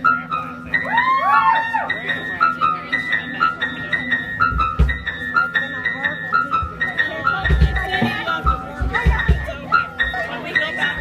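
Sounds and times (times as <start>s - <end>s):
kick drum beats: 4.5s - 5.2s, 7.4s - 9.6s.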